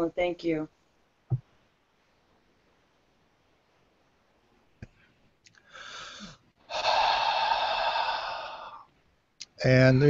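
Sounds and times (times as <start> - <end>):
person breathing deeply: 5.6 - 8.9.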